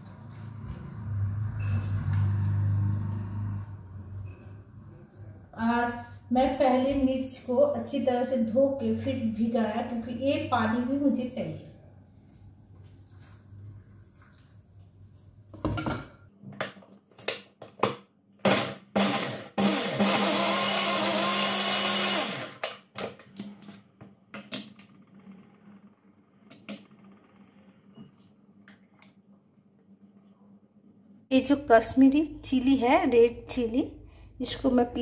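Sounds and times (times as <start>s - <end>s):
mixer grinder grinding: 18.4s - 22.7s.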